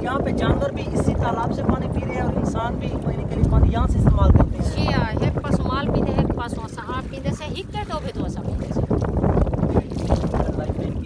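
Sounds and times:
water splashing and sloshing: 0:00.0 - 0:11.0
wind rumble on microphone: 0:00.0 - 0:11.0.

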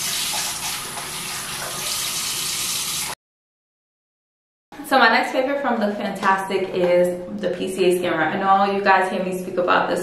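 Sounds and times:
sink faucet running: 0:00.0 - 0:03.2.

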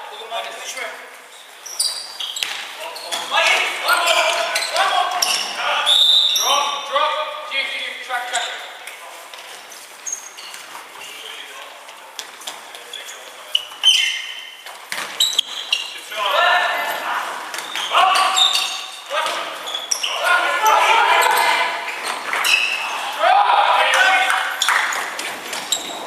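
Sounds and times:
players shouting in echoing hall: 0:02.6 - 0:08.7, 0:16.0 - 0:26.0.

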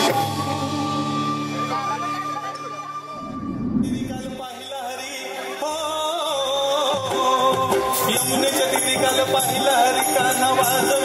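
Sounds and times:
drums: 0:00.0 - 0:01.6, 0:03.1 - 0:11.0
wavering voice gliding: 0:03.1 - 0:04.5.

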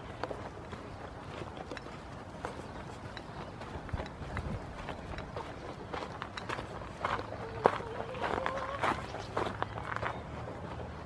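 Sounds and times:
footsteps on dirt: 0:00.0 - 0:11.0.

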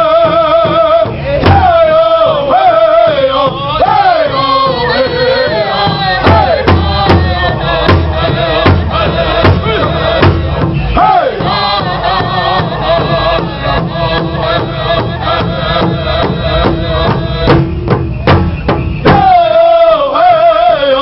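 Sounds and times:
men singing in unison: 0:00.0 - 0:17.9, 0:19.0 - 0:21.0
large drum beating: 0:00.0 - 0:19.6.

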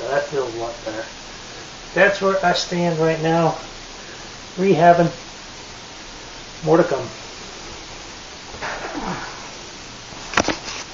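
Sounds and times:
steady background hiss: 0:00.0 - 0:10.9
short falling vocal sound: 0:08.6 - 0:09.6.

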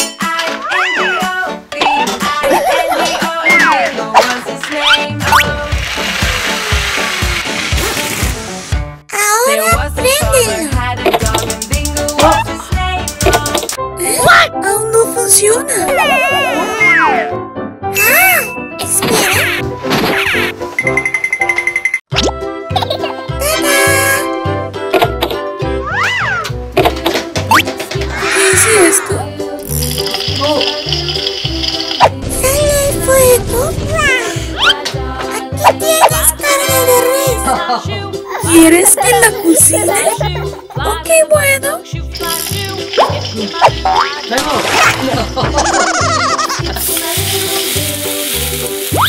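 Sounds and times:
background music with a beat: 0:09.8 - 0:13.9.

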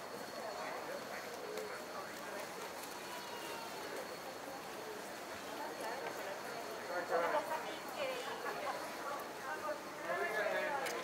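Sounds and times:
distant voices talking: 0:00.0 - 0:11.0.

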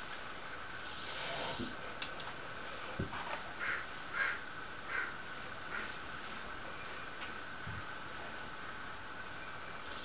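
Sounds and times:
crow cawing: 0:03.6 - 0:05.9.

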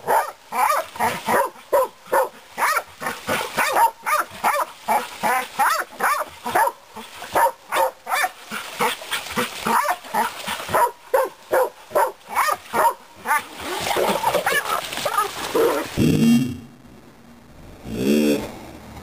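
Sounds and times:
dogs barking: 0:00.0 - 0:15.9.

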